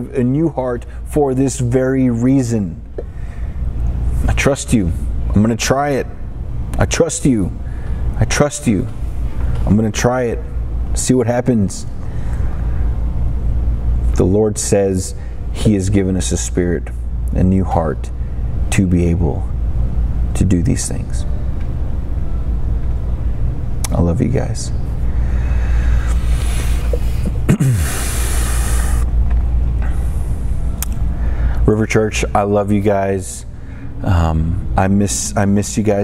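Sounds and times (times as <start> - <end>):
steady low rumble: 0.0 - 36.0.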